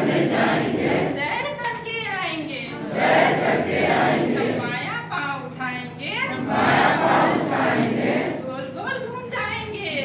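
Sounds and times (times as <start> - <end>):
voices singing in unison: 0.0 - 1.2, 2.7 - 4.6, 6.3 - 8.5.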